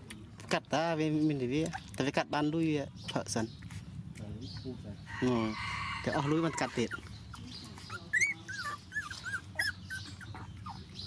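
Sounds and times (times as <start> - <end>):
puppies whimpering: 5.2 - 11.0.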